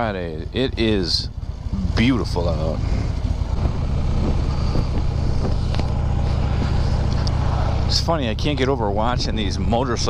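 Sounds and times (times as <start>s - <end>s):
motorcycle engine running: 0.0s - 10.0s
road noise: 0.0s - 10.0s.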